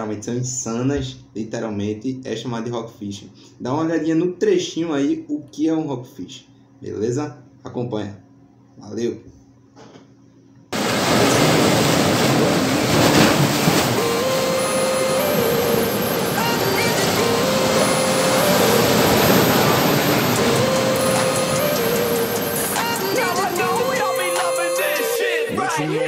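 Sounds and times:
waves breaking over rocks: 0:10.8 - 0:24.2.

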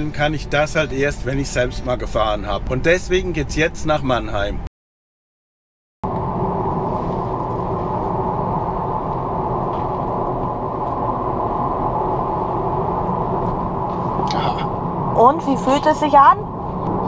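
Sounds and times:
road and tyre rumble in car: 0:00.0 - 0:04.6, 0:06.0 - 0:17.0.

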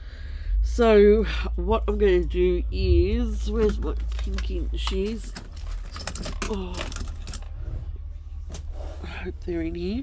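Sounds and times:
steady low rumble: 0:00.0 - 0:10.0
rustle of craft supplies: 0:03.5 - 0:07.6.

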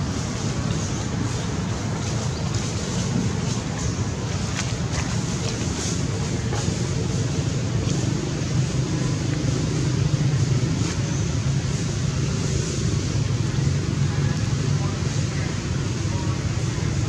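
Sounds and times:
low rumble with hiss: 0:00.0 - 0:17.0.

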